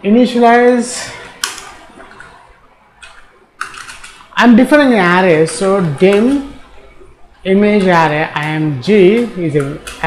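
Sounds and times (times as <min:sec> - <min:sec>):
computer keyboard clicks: 0:01.4 - 0:02.4, 0:03.0 - 0:04.4, 0:09.2 - 0:10.0.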